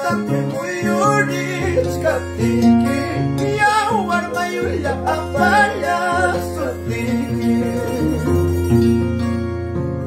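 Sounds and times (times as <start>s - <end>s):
man singing: 0.0s - 8.5s
harp plucking: 0.0s - 10.0s.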